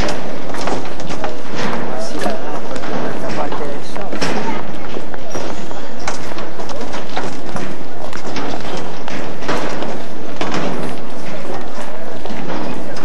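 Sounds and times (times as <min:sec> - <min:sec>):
footsteps on street paving: 0:00.0 - 0:13.0
murmur of voices: 0:00.0 - 0:13.0.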